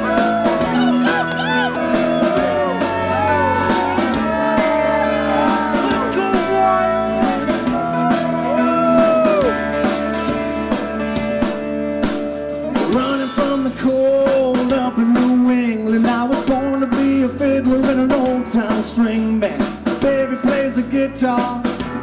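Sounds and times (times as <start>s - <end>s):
man singing: 0.0s - 9.5s, 12.8s - 21.9s
drum kit beat: 0.0s - 22.0s
electric guitar: 0.0s - 22.0s.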